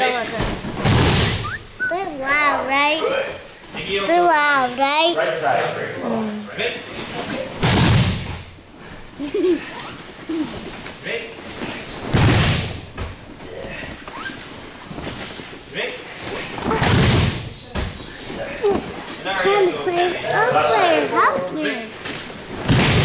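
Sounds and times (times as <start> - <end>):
bodies thudding on mats: 10.0 - 15.6, 16.3 - 19.2, 22.0 - 23.0.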